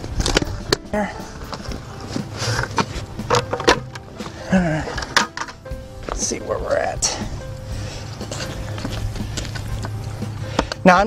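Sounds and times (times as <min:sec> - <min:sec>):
soil sliding out of bucket: 0:01.3 - 0:05.5
bucket knocks: 0:01.5 - 0:05.6.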